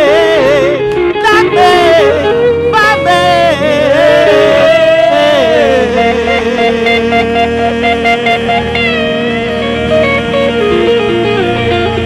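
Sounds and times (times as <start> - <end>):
singer with wide vibrato: 0.0 - 12.0
sustained instrumental chords: 0.0 - 12.0.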